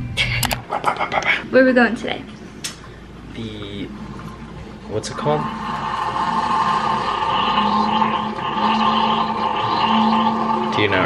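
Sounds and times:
kitchen appliance motor humming: 4.9 - 11.0.

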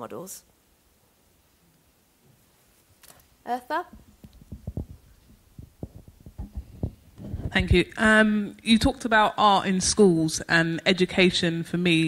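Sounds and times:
microphone handling thumps: 3.9 - 8.2.

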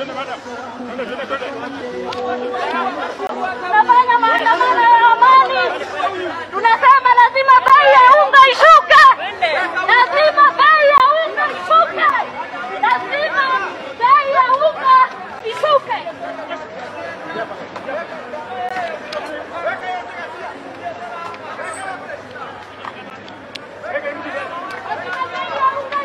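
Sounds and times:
voices chattering: 0.0 - 26.0
woman shouting through megaphone: 3.6 - 5.8, 6.6 - 16.1, 25.0 - 26.0.

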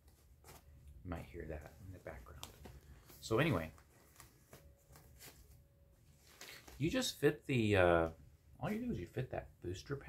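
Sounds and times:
faint plastic rustling: 0.0 - 9.3.

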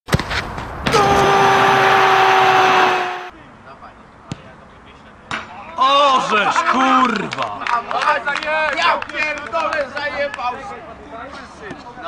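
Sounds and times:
sharp thud: 0.1 - 1.3
open-air ambience: 0.1 - 12.0
man shouting: 0.9 - 3.3.

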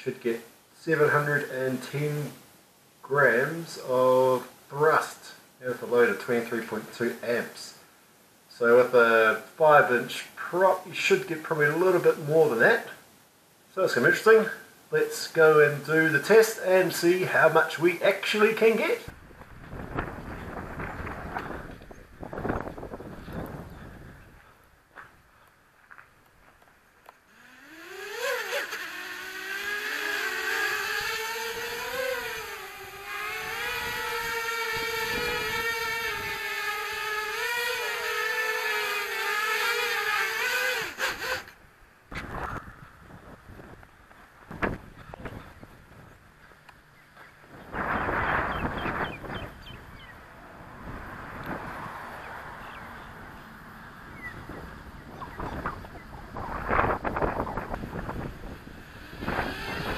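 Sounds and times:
wind on microphone: 19.1 - 24.6, 30.7 - 37.5, 42.1 - 46.2, 47.4 - 53.4, 54.0 - 59.9
quadcopter motors whining: 27.0 - 42.7, 51.3 - 59.9
rush of noise: 47.5 - 59.9.

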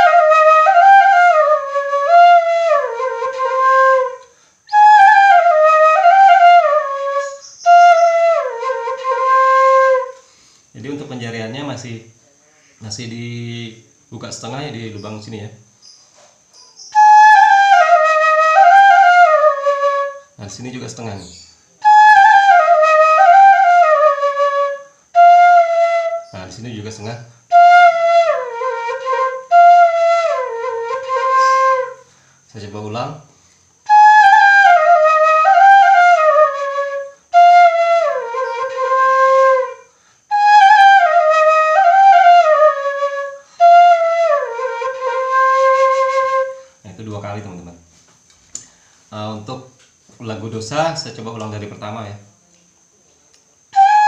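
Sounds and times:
bamboo flute melody: 0.0 - 10.2, 16.9 - 32.1, 33.8 - 46.8, 53.7 - 54.0.

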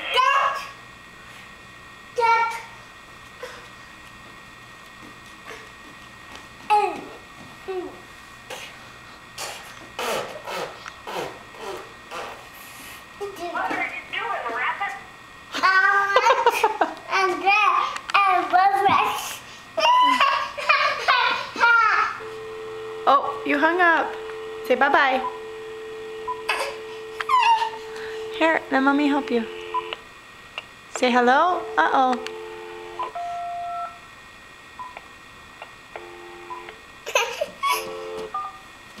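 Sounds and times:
toddler laughing: 19.8 - 22.2, 26.5 - 27.8, 37.0 - 37.9
toddler babbling: 26.5 - 27.8
telephone keypad beeps: 29.1 - 30.0, 31.6 - 34.0.

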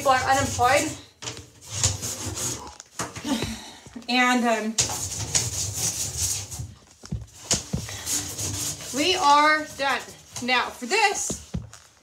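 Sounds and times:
plastic hanger scraping bathtub: 0.0 - 3.2, 4.1 - 12.0.

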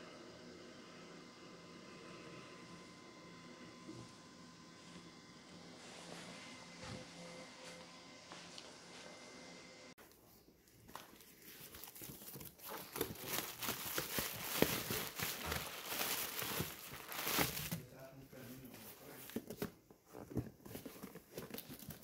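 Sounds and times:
plastic air pillows crinkling: 10.0 - 22.0
cardboard flaps scraping: 10.9 - 17.8
packing tape tearing: 10.9 - 17.8.

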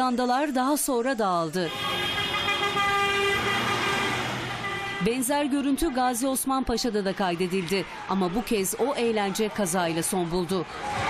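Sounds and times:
car horn long blast: 1.7 - 5.2.

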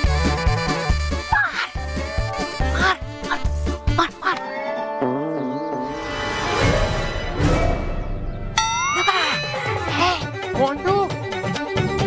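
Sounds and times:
comic music with bass beat: 0.0 - 4.4.

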